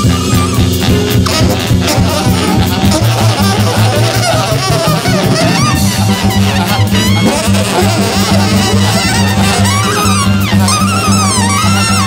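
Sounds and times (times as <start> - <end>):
drums: 0.0 - 12.0
horn honking and squealing: 0.0 - 12.0
plucked double bass: 0.0 - 12.0.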